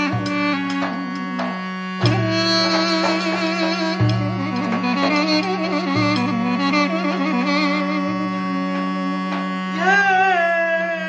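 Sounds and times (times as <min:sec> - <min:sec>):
duduk playing slow melody: 0:00.0 - 0:11.0.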